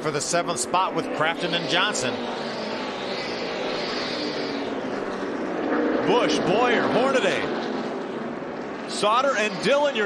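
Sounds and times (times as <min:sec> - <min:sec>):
race truck engines at full throttle: 0:00.0 - 0:10.0.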